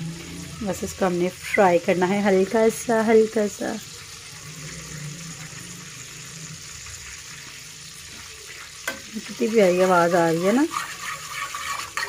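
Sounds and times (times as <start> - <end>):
seeds sizzling in hot fat: 0.0 - 12.0.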